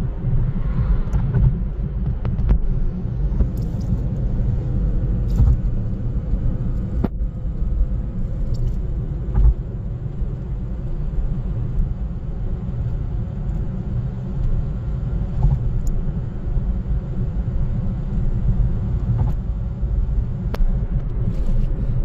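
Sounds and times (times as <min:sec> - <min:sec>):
car engine: 0:00.0 - 0:22.0
tyre and road noise: 0:00.0 - 0:22.0.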